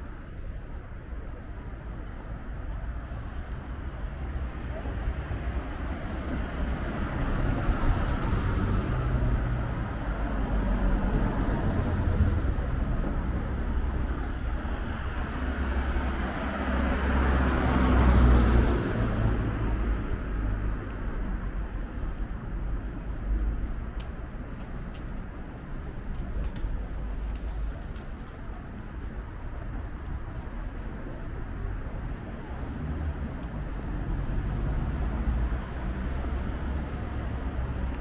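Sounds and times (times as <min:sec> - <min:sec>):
cars passing close by: 0:03.7 - 0:38.0.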